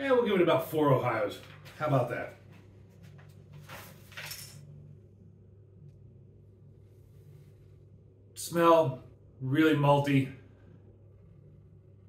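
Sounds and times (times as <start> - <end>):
low steady hum: 0.0 - 12.0
paper rustling: 1.4 - 4.4.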